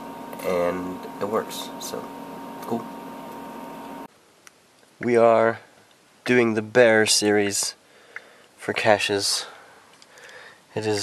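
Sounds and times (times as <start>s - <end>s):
faint high whine: 0.0s - 4.1s
room tone hiss: 0.0s - 11.0s.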